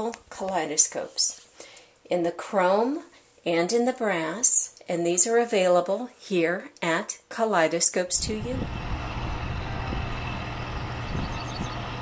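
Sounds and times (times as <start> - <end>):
low mechanical hum: 8.1 - 12.0.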